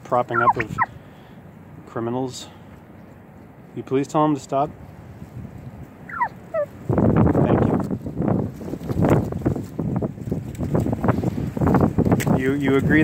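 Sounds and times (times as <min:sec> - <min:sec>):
turkey gobbling: 0:00.2 - 0:01.0, 0:06.0 - 0:06.8.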